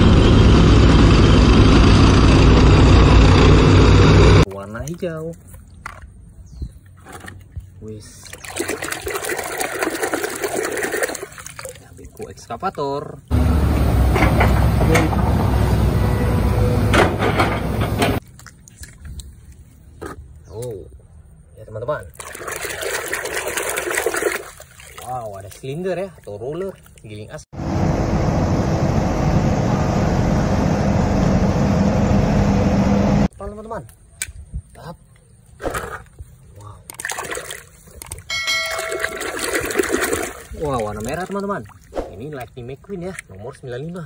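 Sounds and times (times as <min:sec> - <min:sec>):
excavator diesel engine running: 0:00.0 - 0:04.4, 0:13.3 - 0:18.2, 0:27.6 - 0:33.3
water sloshing and splashing: 0:04.5 - 0:13.3, 0:17.0 - 0:20.7, 0:22.0 - 0:27.5, 0:35.5 - 0:44.0
faint running water: 0:37.4 - 0:44.0
bell-like chime: 0:38.3 - 0:39.5.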